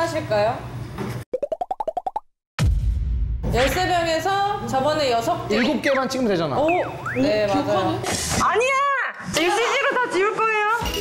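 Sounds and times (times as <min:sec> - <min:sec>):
cartoon rising popping blips: 0:01.3 - 0:02.3.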